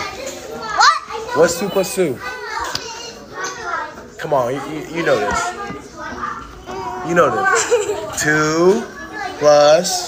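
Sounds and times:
young children talking and playing: 0.0s - 10.0s.

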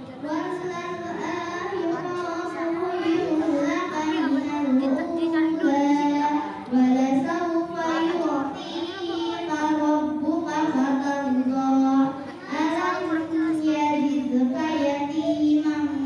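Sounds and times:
boy reciting melodically: 0.0s - 16.0s.

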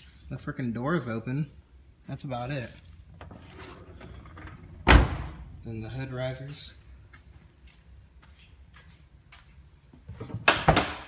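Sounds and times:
car door slam: 4.8s - 5.4s.

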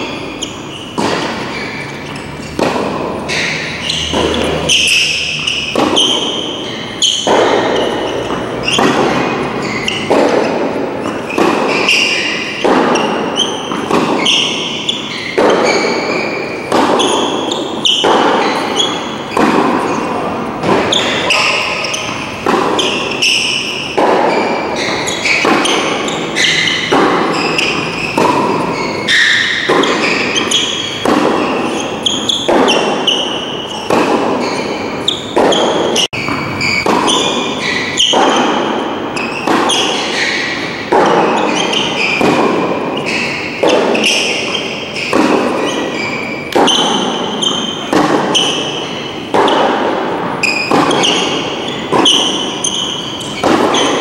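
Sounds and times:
rackets striking tennis ball: 0.0s - 54.0s
tennis ball bouncing on court: 0.0s - 54.0s.

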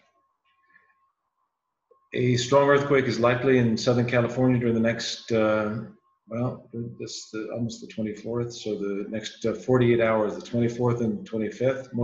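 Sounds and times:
faint high hum: 2.2s - 12.0s.

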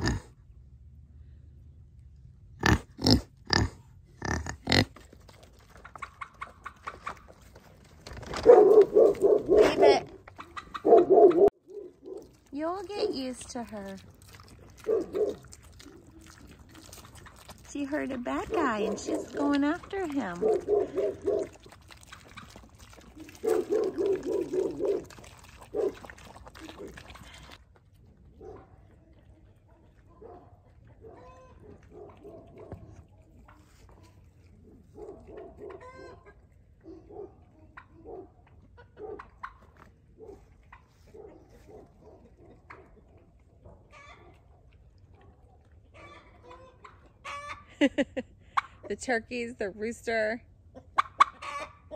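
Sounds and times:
poultry clucking and calling: 4.2s - 7.6s, 8.7s - 12.4s, 31.1s - 32.7s, 35.3s - 39.9s, 42.0s - 44.4s, 45.8s - 47.9s, 50.6s - 51.9s.

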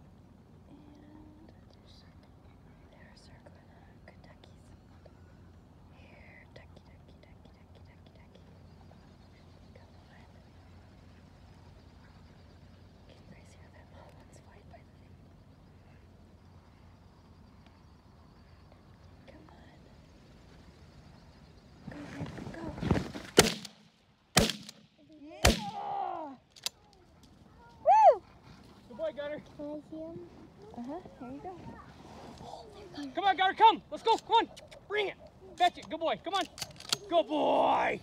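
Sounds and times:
faint field ambience: 0.0s - 38.0s
shotgun blasts: 23.3s - 25.8s
voices: 25.0s - 38.0s.

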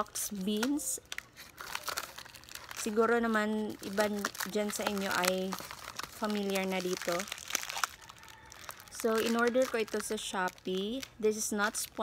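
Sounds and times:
packet crinkling: 0.0s - 12.0s.

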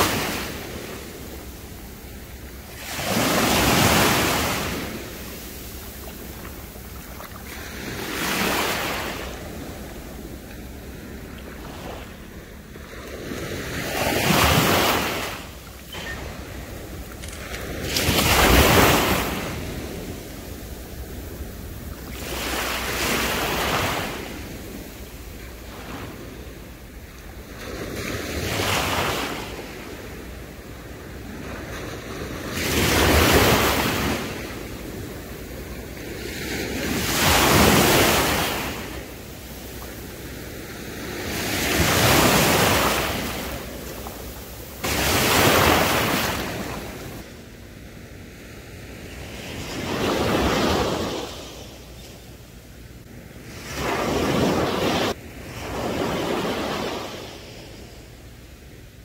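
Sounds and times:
waves breaking on shore: 0.0s - 59.0s.

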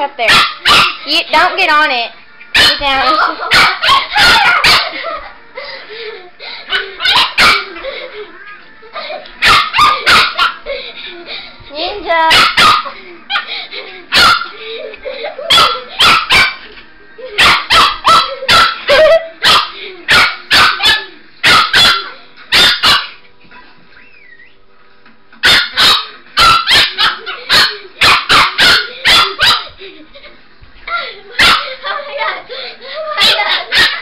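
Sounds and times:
small dog yapping: 0.3s - 1.0s, 3.5s - 4.9s, 6.7s - 7.7s, 9.4s - 10.6s, 12.3s - 12.9s, 14.1s - 14.5s, 15.5s - 16.6s, 17.4s - 23.2s, 25.4s - 29.7s, 33.2s - 34.0s.

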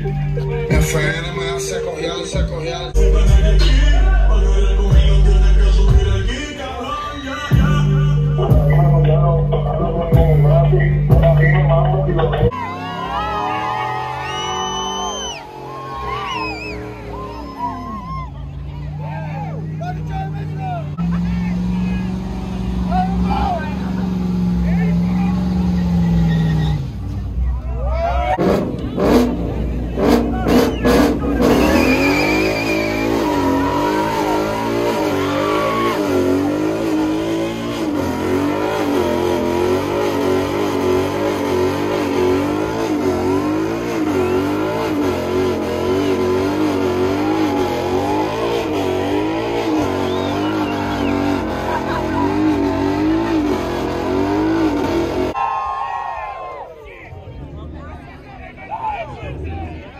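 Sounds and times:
car engine at high revs: 12.5s - 27.6s, 28.4s - 55.4s
tyres squealing: 12.6s - 27.0s, 30.1s - 54.5s.

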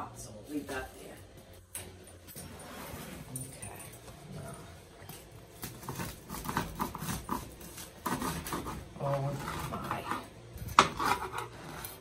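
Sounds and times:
knife sawing through bread crust: 5.6s - 12.0s.

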